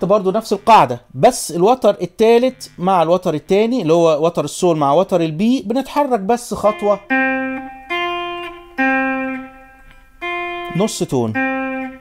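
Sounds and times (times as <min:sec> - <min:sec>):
clean electric guitar dyads: 0:06.5 - 0:12.0.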